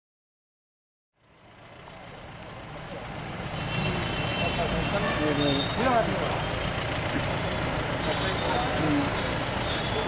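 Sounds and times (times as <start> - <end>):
street traffic: 1.1 - 10.0.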